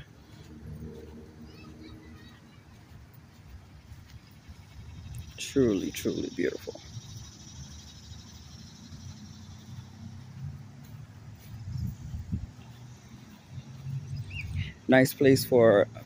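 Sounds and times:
low wind rumble: 0.0 - 14.9.

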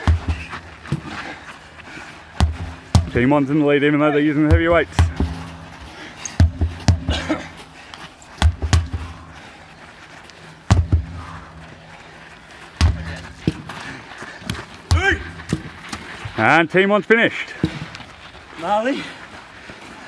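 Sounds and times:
sledgehammer thuds on rubber tyre: 0.0 - 1.2, 2.4 - 3.3, 4.4 - 7.5, 8.4 - 9.2, 10.7 - 11.4, 12.8 - 13.7, 14.9 - 16.0.

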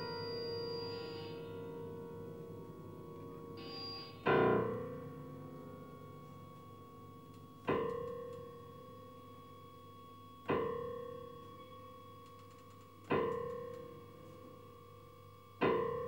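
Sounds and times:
grand piano note ringing: 0.0 - 12.1.

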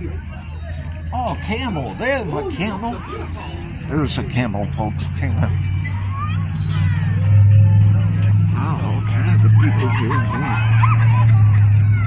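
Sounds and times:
distant crowd voices: 0.0 - 12.0
low engine hum: 0.0 - 12.0.

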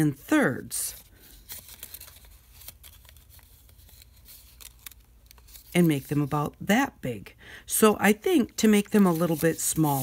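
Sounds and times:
paper rustling and ticking: 1.4 - 6.4.

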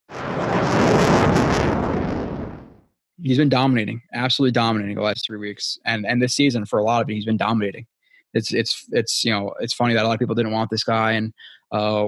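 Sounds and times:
loud rushing noise: 0.1 - 2.7.

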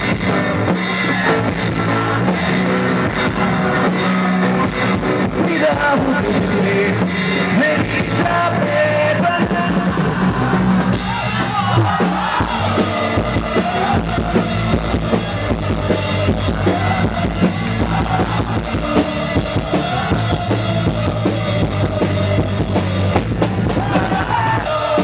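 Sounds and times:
drum kit beat: 0.0 - 25.0
electric guitars: 0.0 - 25.0.

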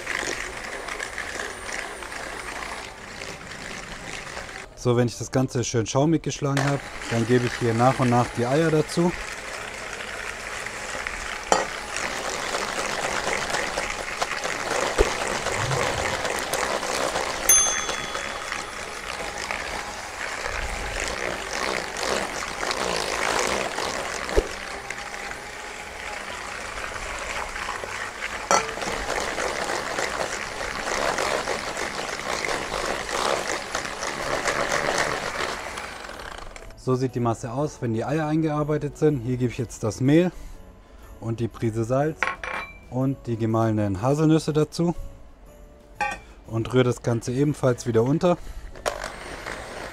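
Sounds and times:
electric hand mixer whirring: 0.0 - 4.7, 6.6 - 36.8, 48.7 - 49.9.

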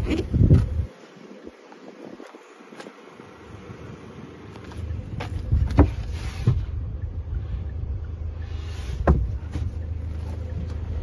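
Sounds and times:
wind buffeting microphone: 0.0 - 11.0
car floor board knocks and clicks: 5.2 - 6.7, 9.0 - 9.7.

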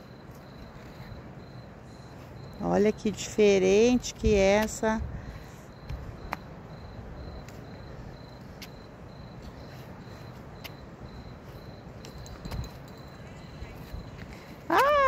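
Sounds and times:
cricket chirping: 0.0 - 15.0.

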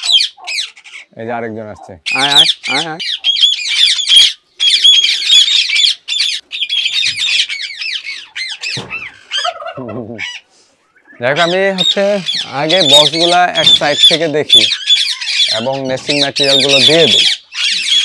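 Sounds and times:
parakeets screeching: 0.0 - 18.0.

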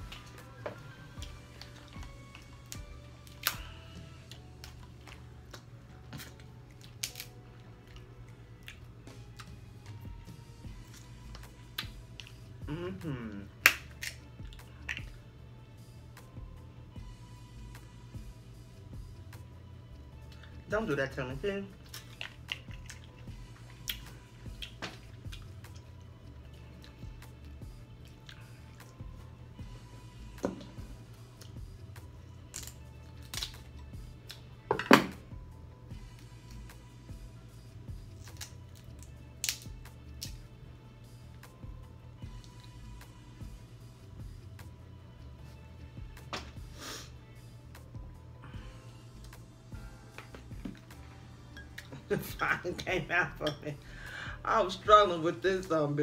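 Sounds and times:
crab shells cracking: 1.6 - 3.7, 4.3 - 7.4, 13.6 - 15.1, 21.8 - 23.3, 32.5 - 33.7, 38.2 - 40.4
person humming: 12.5 - 13.6.

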